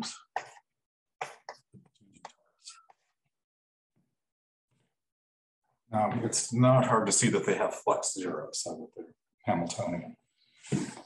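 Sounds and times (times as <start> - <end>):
person speaking: 6.0 - 10.1.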